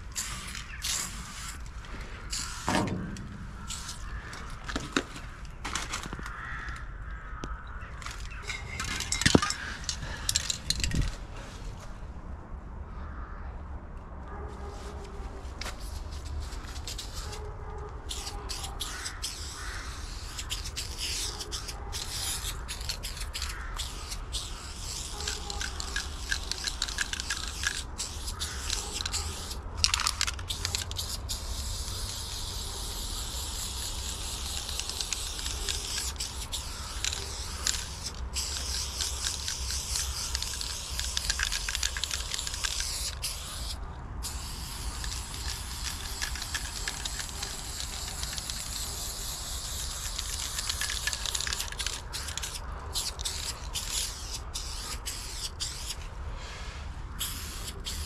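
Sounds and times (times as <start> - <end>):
aerosol spray can hissing: 2.3 - 2.8, 18.1 - 56.0, 57.2 - 58.0.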